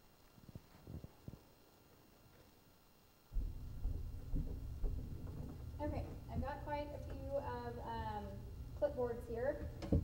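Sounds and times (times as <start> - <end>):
clothing rubbing on microphone: 0.4 - 1.5.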